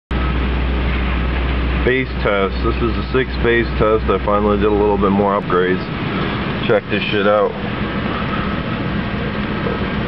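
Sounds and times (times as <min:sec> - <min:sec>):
car engine idling: 0:00.1 - 0:10.0
ventilation fan hiss: 0:00.2 - 0:10.0.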